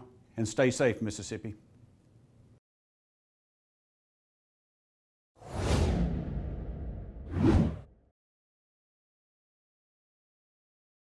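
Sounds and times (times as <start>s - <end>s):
whoosh: 5.4s - 8.0s
low rumble: 5.5s - 7.8s.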